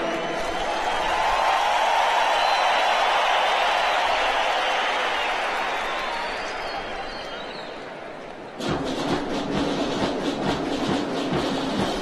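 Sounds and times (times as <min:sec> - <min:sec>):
steady drum beat: 0:08.6 - 0:12.0.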